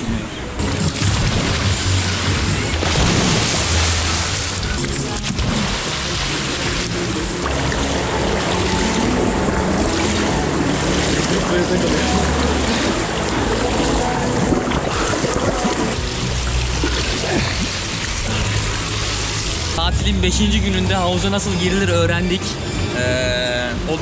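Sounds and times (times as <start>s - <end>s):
pool water splashing: 0.0s - 19.8s
music track: 0.3s - 24.0s.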